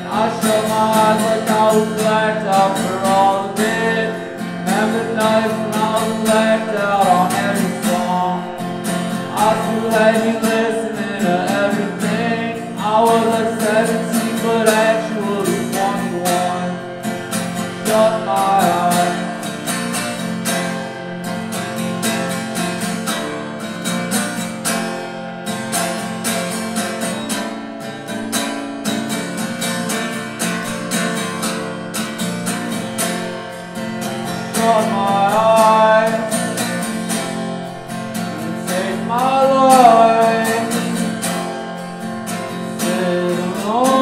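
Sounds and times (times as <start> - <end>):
acoustic guitar strumming: 0.0 - 44.0.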